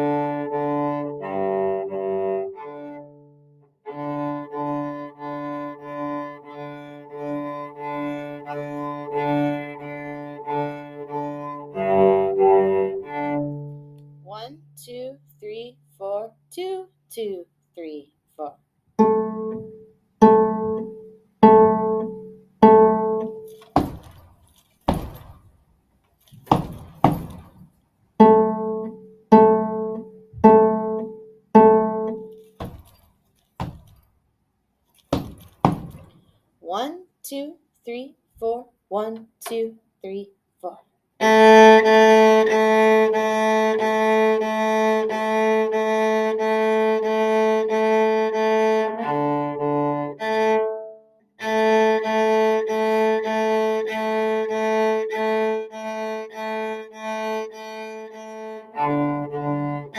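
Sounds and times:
bowed cello: 0.0 - 14.4, 19.0 - 23.5, 28.2 - 32.3, 41.2 - 59.9
short dry knocks: 23.6 - 25.4, 26.3 - 27.7, 32.6 - 34.0, 35.0 - 36.2.

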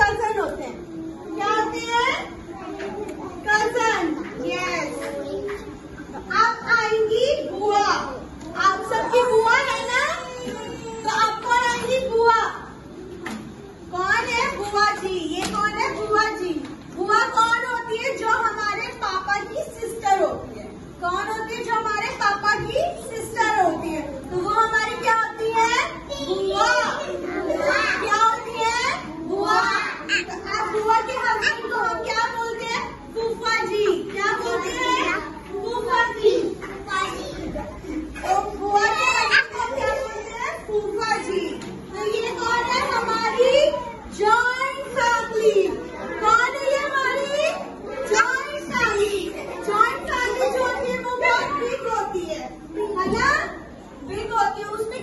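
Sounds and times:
children talking and calling out: 0.0 - 55.0.

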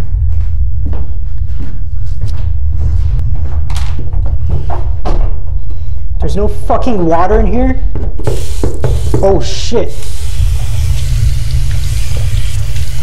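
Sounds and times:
knocks and thuds of handling things: 3.3 - 5.8, 7.9 - 9.3.

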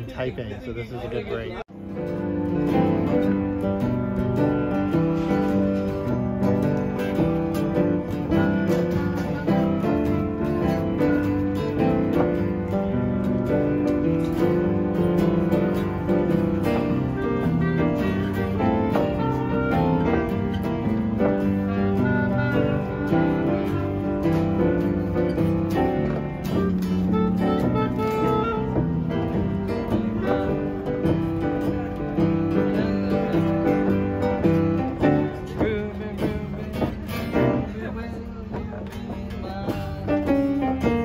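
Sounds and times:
acoustic guitar: 0.0 - 41.0
piano: 1.6 - 41.0.

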